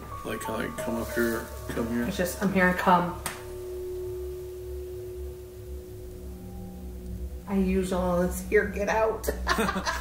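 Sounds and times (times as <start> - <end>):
low rumble: 0.0 - 10.0
lower tone: 0.0 - 10.0
sustained drone tone: 0.0 - 10.0.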